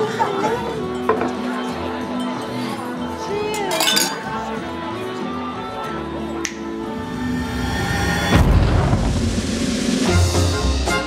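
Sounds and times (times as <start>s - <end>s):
background music: 0.0s - 11.0s
wine glasses clinking: 3.5s - 4.4s
table chatter: 3.5s - 4.6s.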